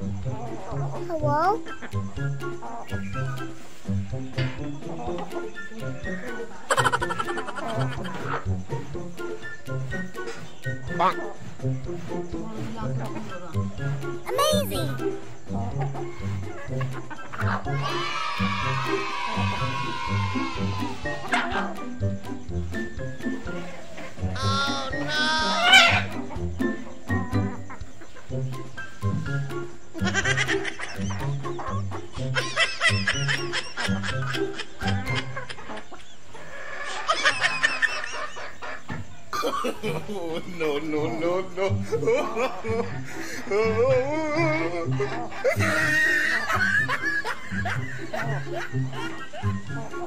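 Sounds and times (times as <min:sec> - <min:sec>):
chickens clucking: 0:00.0 - 0:50.0
short high chicken calls: 0:24.4 - 0:26.2.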